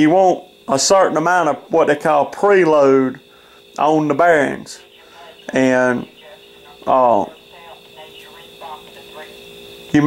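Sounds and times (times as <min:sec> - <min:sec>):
man speaking: 0:00.0 - 0:03.2, 0:03.8 - 0:06.2, 0:06.8 - 0:07.4
steady tonal hum: 0:00.0 - 0:10.0
faint indistinct voices: 0:04.5 - 0:09.4.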